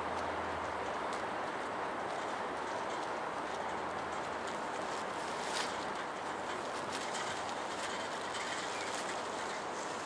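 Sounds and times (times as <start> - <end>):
tram running noise: 0.0 - 10.0.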